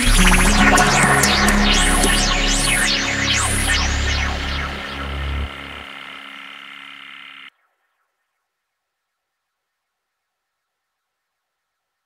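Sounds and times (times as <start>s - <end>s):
bass: 0.0s - 6.3s
sustained synthesizer chord: 0.0s - 7.5s.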